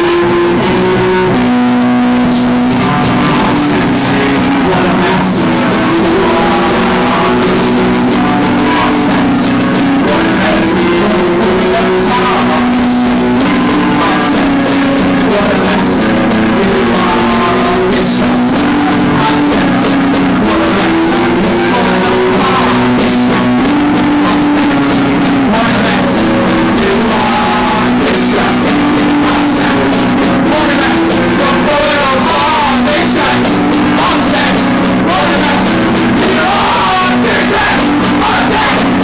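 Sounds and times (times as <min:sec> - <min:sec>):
live rock band playing: 0:00.0 - 0:39.0
person singing: 0:00.0 - 0:39.0.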